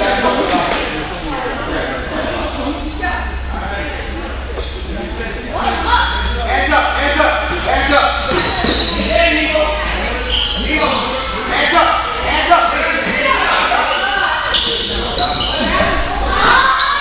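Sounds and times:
sneakers squeaking on gym floor: 0.3s - 1.7s, 2.4s - 17.0s
people shouting: 5.2s - 17.0s.

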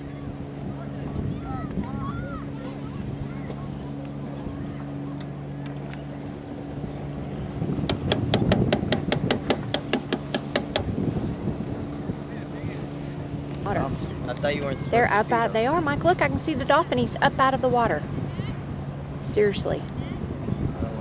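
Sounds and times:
boat engine idling: 0.0s - 21.0s.

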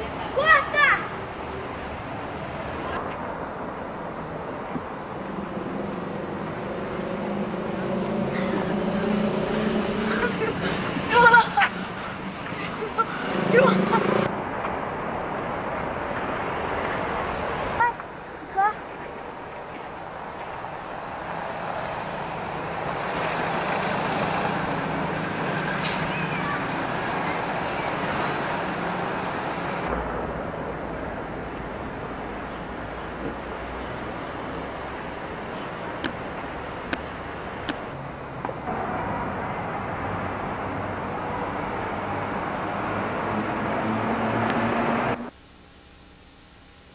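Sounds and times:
car engine hum: 0.0s - 17.9s, 19.2s - 45.4s
street traffic rumble: 0.0s - 45.4s
tyre and road noise: 0.0s - 45.4s.

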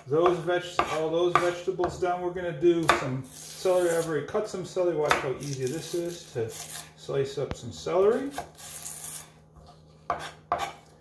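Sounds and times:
knife striking cutting board: 0.0s - 2.0s, 5.0s - 5.5s, 10.1s - 10.8s
knife slicing celery: 0.2s - 1.6s, 2.8s - 4.2s, 5.0s - 6.9s, 8.1s - 10.9s.

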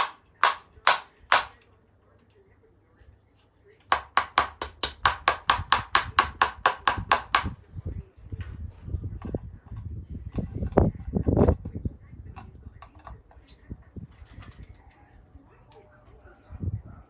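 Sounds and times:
hammer striking in brick wall: 0.0s - 1.6s, 3.9s - 7.6s.

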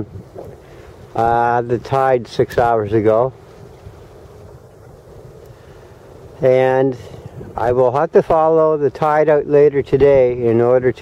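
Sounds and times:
wind on microphone: 0.0s - 9.0s, 9.8s - 11.0s.

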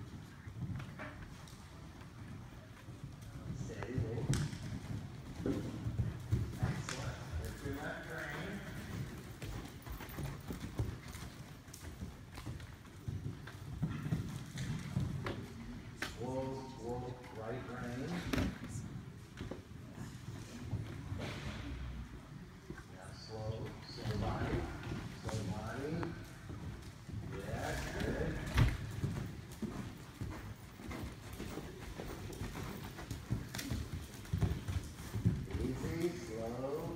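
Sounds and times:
horse hooves cantering on sand: 0.0s - 36.9s.

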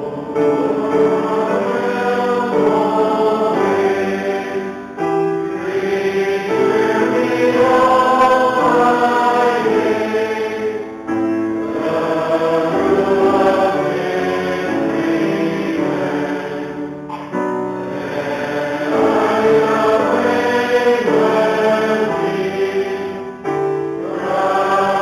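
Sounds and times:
congregation singing a hymn: 0.0s - 25.0s
keyboard accompaniment: 0.0s - 25.0s.

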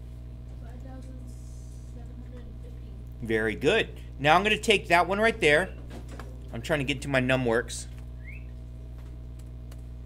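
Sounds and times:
steady low hum: 0.0s - 10.0s
rising whistle-like chirp: 8.2s - 8.5s.

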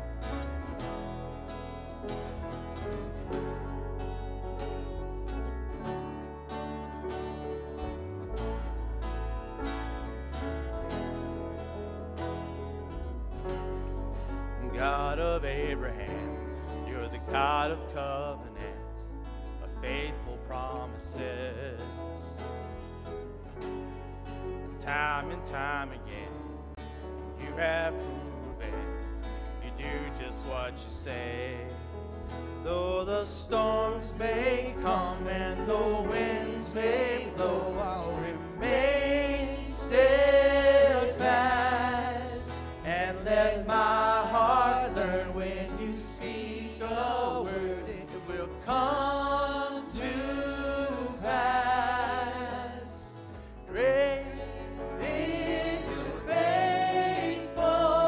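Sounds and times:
acoustic guitar strumming: 0.0s - 58.0s
low bass notes: 0.0s - 58.0s.

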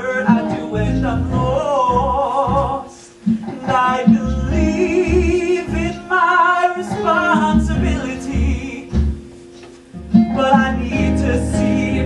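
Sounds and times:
musical theatre singing: 0.0s - 12.0s
low regular beat: 7.0s - 11.0s.

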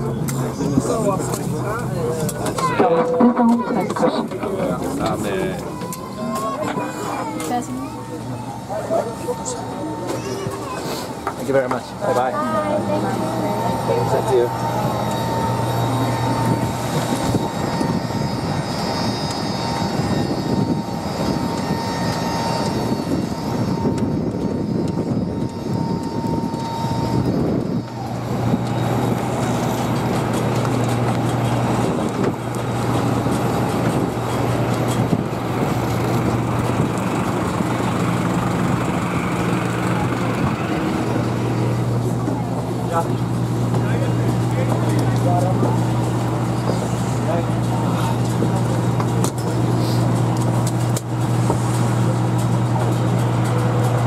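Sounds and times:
apron machinery hum: 0.0s - 54.0s
high whine: 0.0s - 54.0s
jet airliner drone: 0.0s - 54.0s.

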